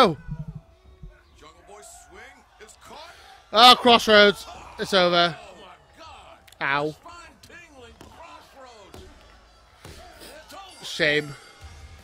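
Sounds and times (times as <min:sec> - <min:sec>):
commentators talking: 0:00.0 - 0:08.9.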